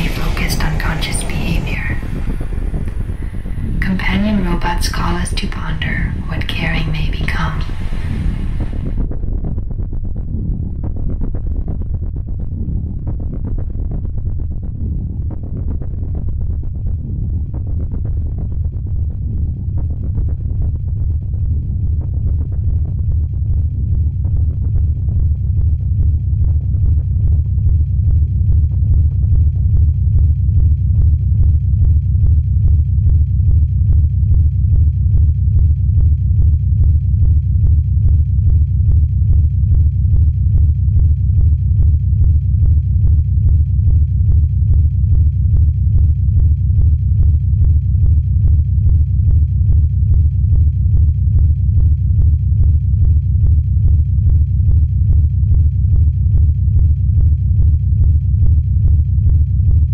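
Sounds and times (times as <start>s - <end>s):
person speaking: 0.0s - 2.3s, 3.6s - 8.0s
low pulsing rumble drone: 0.0s - 59.9s.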